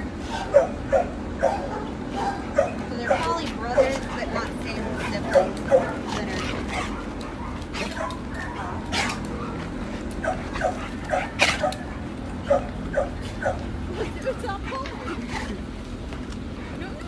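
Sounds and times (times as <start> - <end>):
dogs barking and yipping: 0.0 - 15.7.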